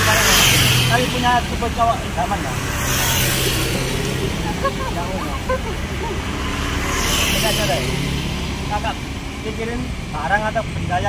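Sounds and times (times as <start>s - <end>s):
road traffic: 0.0s - 11.0s
people laughing and chatting: 3.3s - 9.1s.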